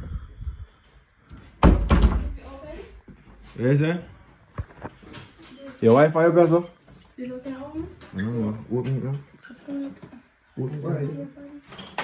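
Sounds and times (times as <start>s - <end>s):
wooden door banging: 1.6s - 2.4s.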